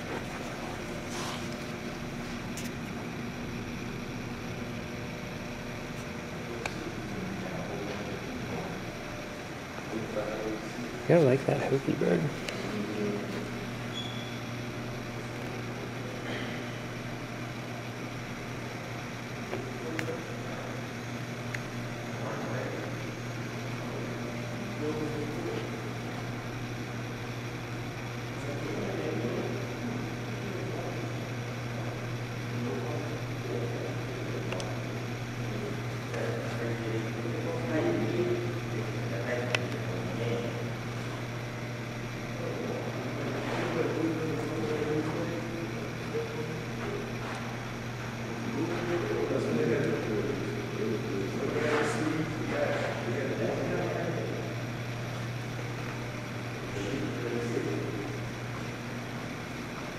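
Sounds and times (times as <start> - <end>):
low room hum: 0.0 - 59.9.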